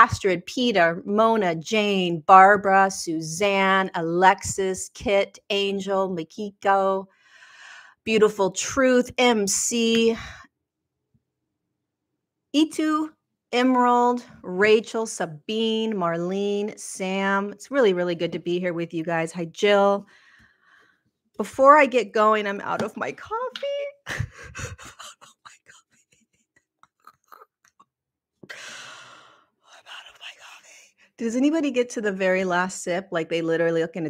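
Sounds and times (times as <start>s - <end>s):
woman's voice: 0.0s - 7.0s, 8.1s - 10.4s, 12.6s - 20.1s, 21.4s - 25.8s, 29.8s - 34.0s
breaths close to microphone: 7.1s - 8.0s, 20.0s - 21.1s, 28.4s - 29.7s.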